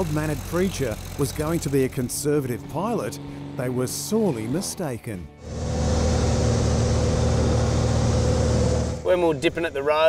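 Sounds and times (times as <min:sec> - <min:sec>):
light aircraft engine droning: 0:05.3 - 0:09.1
rushing air hiss: 0:05.4 - 0:09.0.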